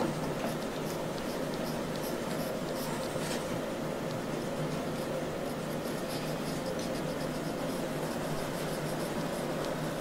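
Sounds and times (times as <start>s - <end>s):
pencil scratching on paper: 0.0s - 10.0s
steady room hum: 0.0s - 10.0s.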